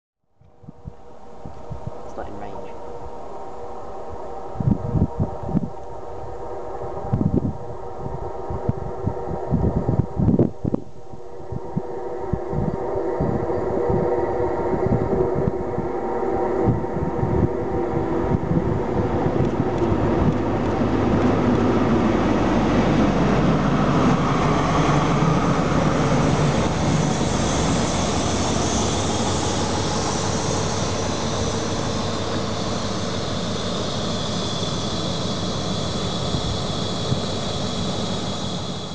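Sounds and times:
train coaches rumbling past: 0:11.1 - 0:38.9
high-pitched squeal: 0:23.6 - 0:38.9.

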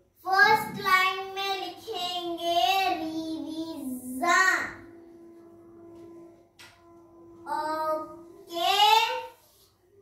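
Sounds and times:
girl singing: 0:07.4 - 0:09.2.

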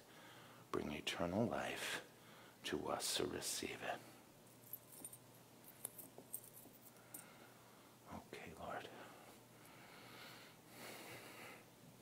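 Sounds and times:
man whispering: 0:00.7 - 0:04.2, 0:08.0 - 0:09.4.

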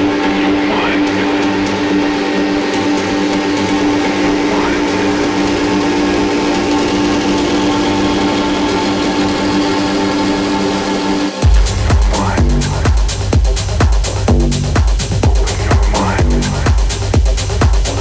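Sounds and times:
rising synth sweep: 0:00.0 - 0:17.0
synth drone: 0:00.0 - 0:18.0.

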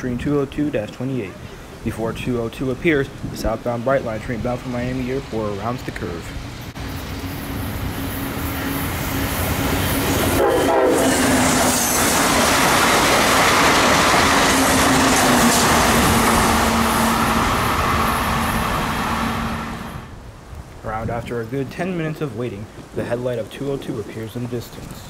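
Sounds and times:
train wheels rumbling: 0:02.6 - 0:20.2
train horn: 0:08.2 - 0:11.7.

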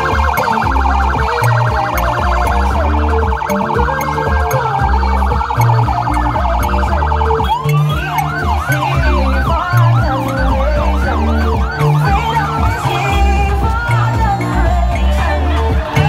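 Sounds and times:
music with heavy bass line: 0:00.0 - 0:16.0
siren pulsing warble and yelp: 0:00.0 - 0:16.0.

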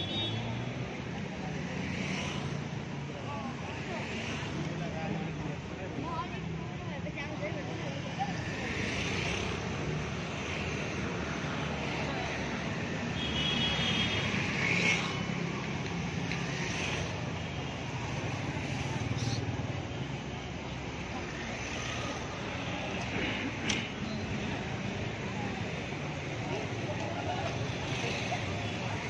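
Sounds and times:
traffic hum: 0:00.0 - 0:29.0
people's voices: 0:01.0 - 0:13.2, 0:14.1 - 0:29.0.

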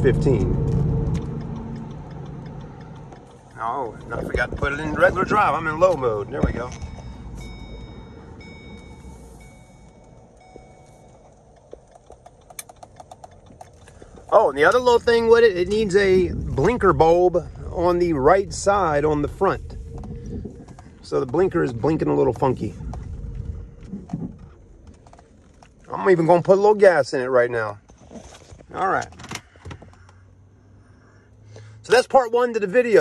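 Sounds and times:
road and tyre rumble: 0:00.0 - 0:33.0
turn-signal ticking: 0:00.1 - 0:23.3
high electronic tone: 0:06.3 - 0:11.5.

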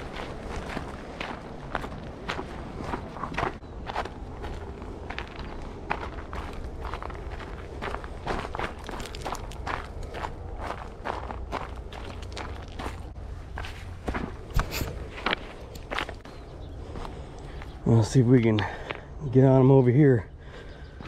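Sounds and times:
footsteps on gravel: 0:00.0 - 0:19.1.

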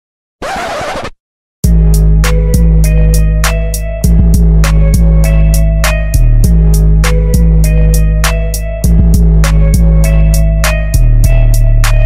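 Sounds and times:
loud music with deep bass: 0:01.7 - 0:12.0.

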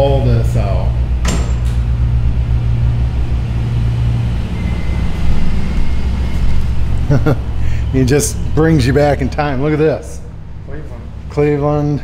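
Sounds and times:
engine running with low rumble: 0:00.0 - 0:12.0
faint high whine: 0:01.9 - 0:12.0.

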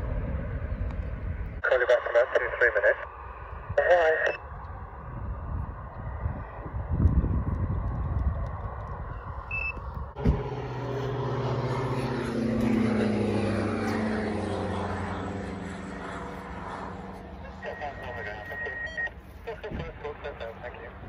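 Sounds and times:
gusty wind on microphone: 0:00.0 - 0:01.6, 0:04.4 - 0:10.5
propeller aircraft flying past: 0:00.0 - 0:21.0.

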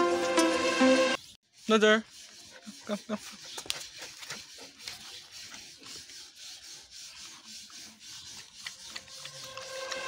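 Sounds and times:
puppy panting: 0:02.2 - 0:06.1, 0:08.2 - 0:09.7.

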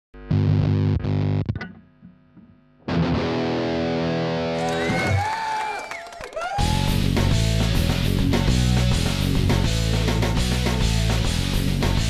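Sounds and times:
distorted electric guitar chords: 0:00.2 - 0:04.9, 0:06.6 - 0:12.0.

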